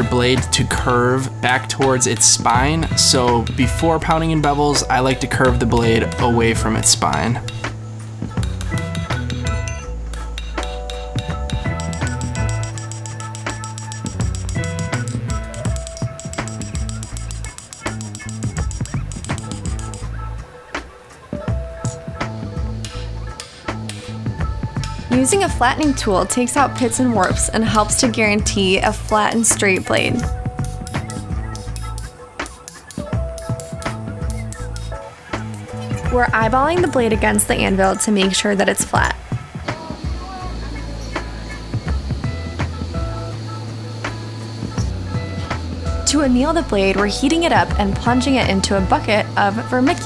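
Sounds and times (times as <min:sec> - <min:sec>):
background music with bass line: 0:00.0 - 0:50.0.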